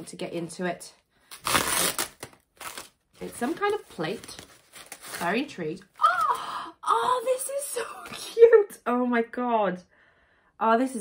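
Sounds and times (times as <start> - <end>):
tissue paper crumpling and rustling: 2.6 - 6.3.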